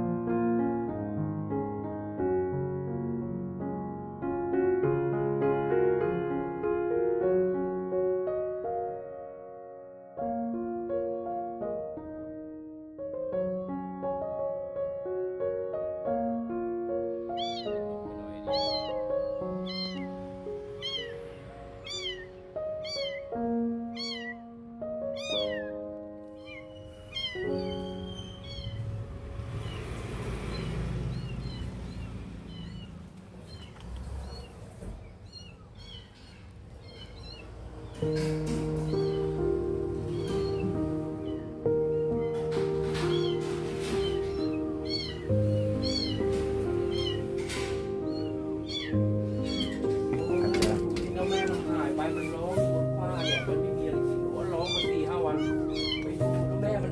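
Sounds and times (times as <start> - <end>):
piano music: 0.0 - 56.9
kitten mewing: 17.3 - 24.4, 25.1 - 37.6, 38.7 - 39.4, 40.0 - 41.6, 43.1 - 47.4, 48.0 - 52.3, 53.1 - 53.7, 54.5 - 56.4.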